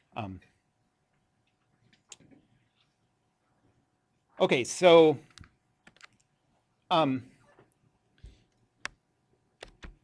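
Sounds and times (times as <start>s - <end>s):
soft small sounds: 0.0s - 10.0s.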